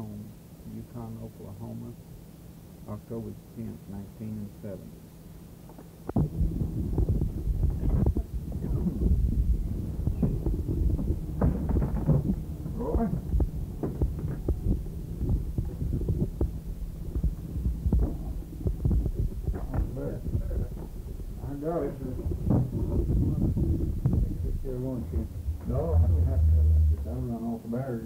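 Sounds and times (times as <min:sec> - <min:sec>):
electrical hum: 0:00.0 - 0:28.0
microphone handling thumps: 0:06.1 - 0:27.6
faint muffled voices: 0:12.1 - 0:13.3, 0:19.5 - 0:28.0.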